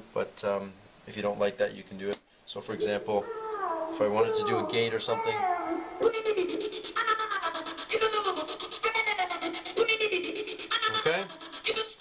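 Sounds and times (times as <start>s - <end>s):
falling pitched phrase: 2.8s - 11.4s
gated electronic dance music: 2.8s - 12.0s.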